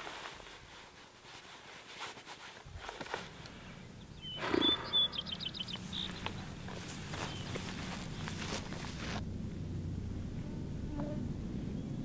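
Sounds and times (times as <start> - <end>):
high chirping calls: 3.6 - 8.7
low animal roar: 4.4 - 5.3.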